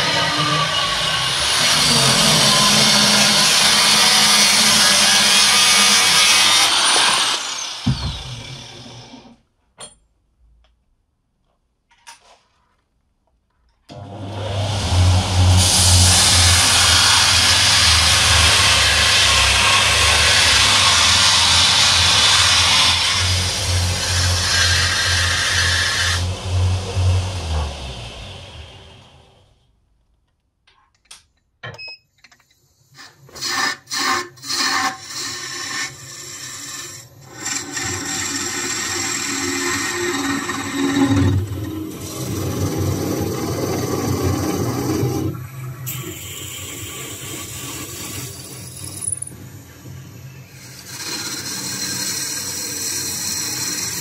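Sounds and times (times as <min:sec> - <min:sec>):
belt grinder humming: 0:00.0 - 0:09.3, 0:13.9 - 0:29.4
steel grinding on abrasive belt: 0:00.0 - 0:09.3, 0:13.9 - 0:29.4, 0:33.0 - 0:54.0
sharp clicks and knocks: 0:30.1 - 0:32.6.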